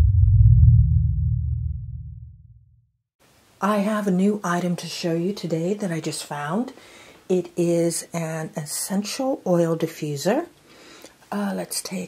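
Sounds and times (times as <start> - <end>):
deep low rumble: 0.0 - 2.8.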